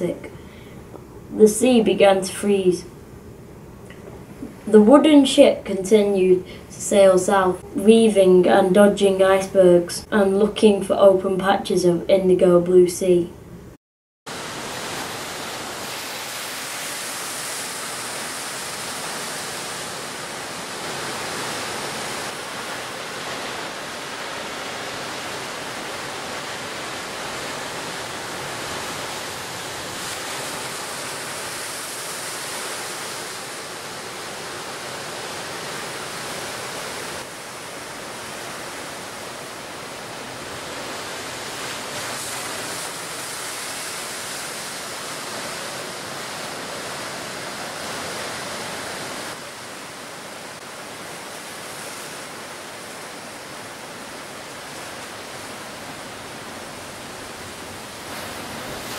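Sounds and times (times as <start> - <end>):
sea waves rushing: 14.3 - 58.9.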